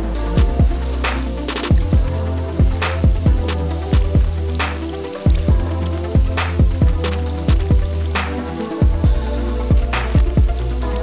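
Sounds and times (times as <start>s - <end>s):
electronic beat with kick drums: 0.0s - 11.0s
low bass: 0.0s - 11.0s
sharp snare hits: 0.4s - 2.0s, 2.8s - 5.5s, 6.3s - 8.7s, 9.9s - 10.5s.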